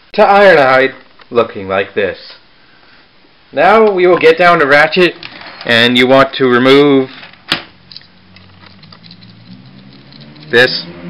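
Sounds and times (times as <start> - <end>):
hands handling plastic parts: 7.1 - 10.6.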